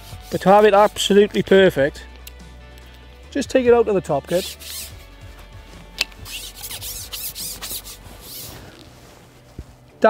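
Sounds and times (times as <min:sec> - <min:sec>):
fishing pole rasping rubs: 0:00.0 - 0:01.2, 0:04.2 - 0:09.8.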